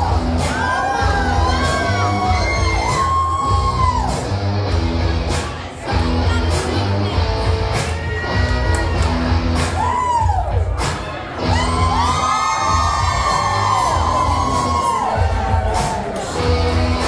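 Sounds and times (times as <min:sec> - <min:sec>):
crowd cheering and whooping: 0:00.0 - 0:04.7, 0:07.7 - 0:17.0
loud music with bass beat: 0:00.0 - 0:17.0.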